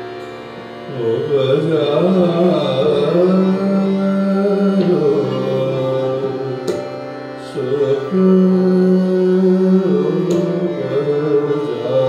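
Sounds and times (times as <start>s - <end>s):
harmonium: 0.0s - 12.0s
tanpura drone: 0.0s - 12.0s.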